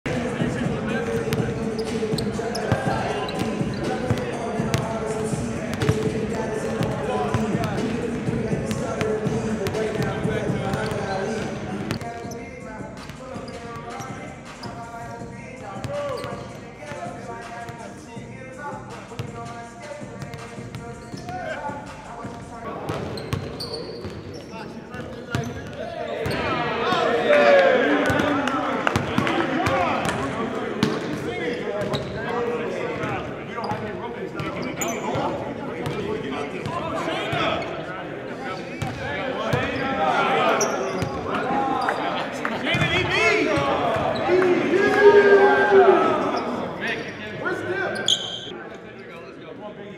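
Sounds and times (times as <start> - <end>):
loud group chatter: 0.0 - 49.9
voices: 0.1 - 49.9.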